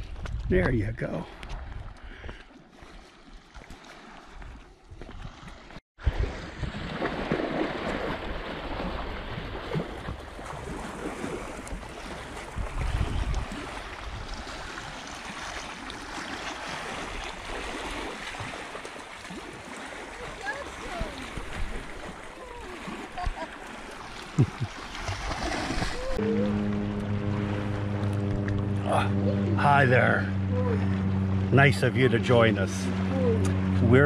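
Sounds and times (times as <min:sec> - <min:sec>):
wind rushing over microphone: 0:12.4 - 0:14.5.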